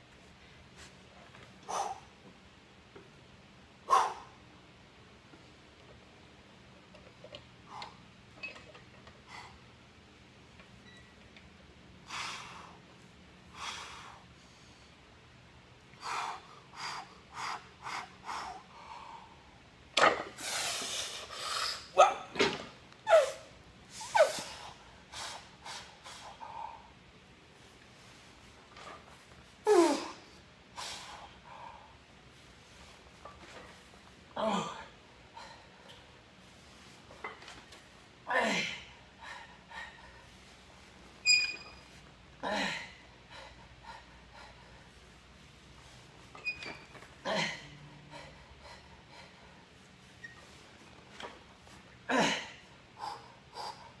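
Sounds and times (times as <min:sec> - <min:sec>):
strained grunts: 0:34.3 - 0:35.0, 0:47.2 - 0:48.4, 0:52.0 - 0:52.7.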